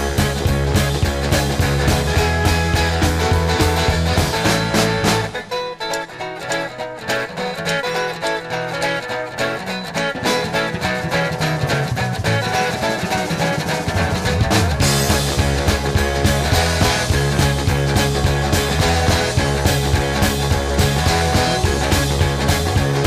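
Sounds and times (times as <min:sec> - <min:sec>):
folk-rock band playing: 0:00.0 - 0:23.0
plucked guitar notes: 0:00.0 - 0:23.0.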